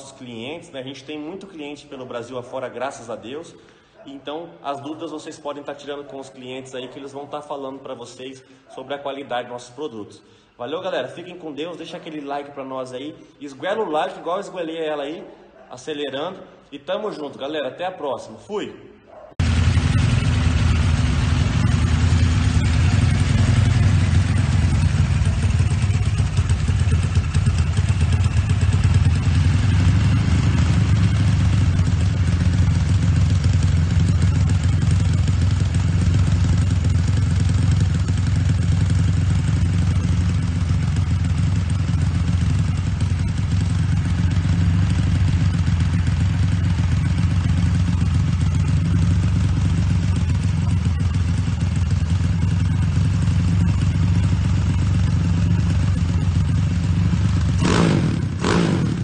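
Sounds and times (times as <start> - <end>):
motorcycle engine running steadily: 19.4 - 59.0.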